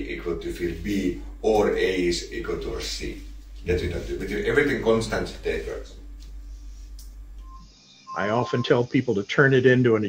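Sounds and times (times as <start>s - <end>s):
steady low hum: 0.0s - 9.9s.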